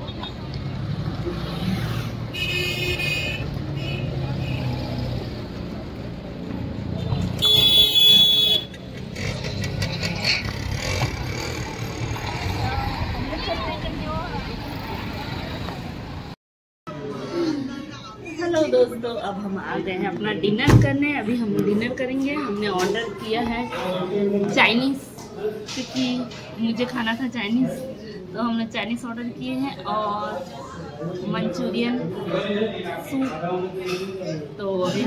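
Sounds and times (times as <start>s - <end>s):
vehicles running: 0.0s - 16.4s
car horn: 2.3s - 4.8s, 7.3s - 8.8s.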